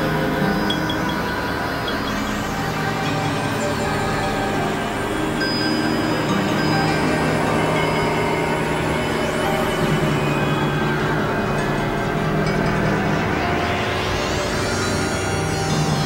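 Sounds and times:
electronic drone music: 0.0s - 16.0s
thin high synthesizer tone: 0.0s - 16.0s.

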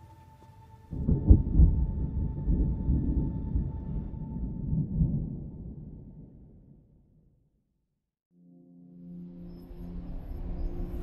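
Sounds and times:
deep thunder-like rumble: 1.0s - 7.2s.

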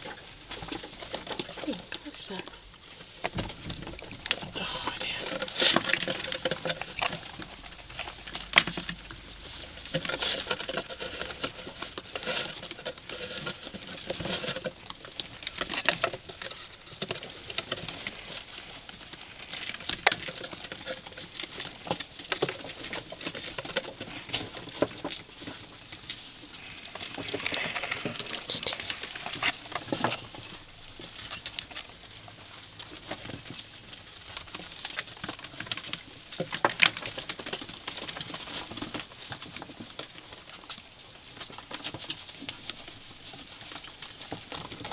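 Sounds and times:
claws scrabbling on cardboard: 0.0s - 44.9s.

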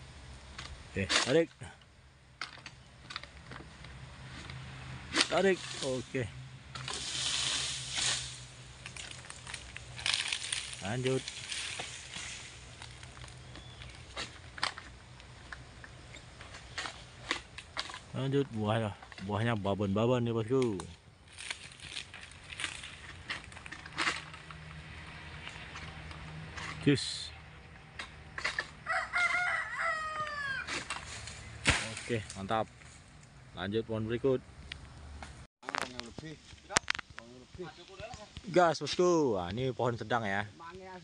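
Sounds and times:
palm fronds rustling and crackling: 2.3s - 41.0s
stalks snapping: 6.8s - 15.3s, 20.5s - 24.8s, 30.7s - 32.4s.

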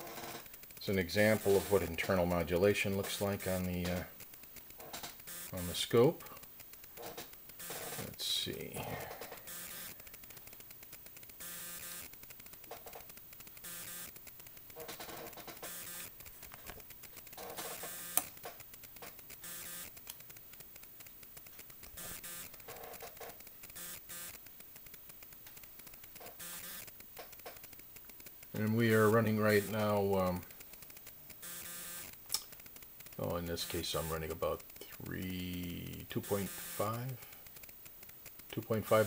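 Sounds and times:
background hiss: 0.0s - 39.0s.

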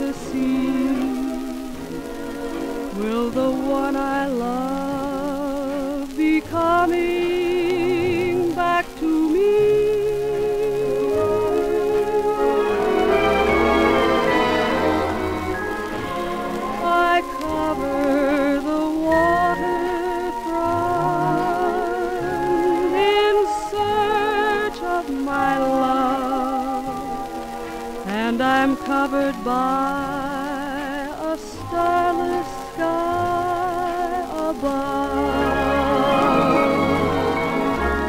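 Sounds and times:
person singing: 0.0s - 38.0s
dance orchestra playing: 11.2s - 20.0s, 35.1s - 38.0s.

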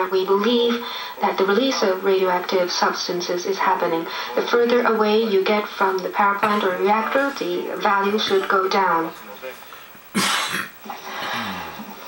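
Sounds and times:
single cough: 10.1s - 10.8s.

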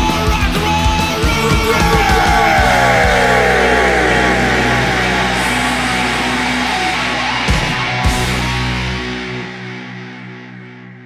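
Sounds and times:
yelled vocal: 1.2s - 7.8s
heavy rock band playing: 1.2s - 9.4s.

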